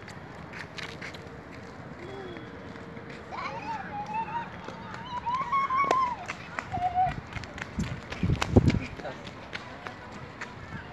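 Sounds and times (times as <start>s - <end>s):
footsteps: 0.0s - 10.9s.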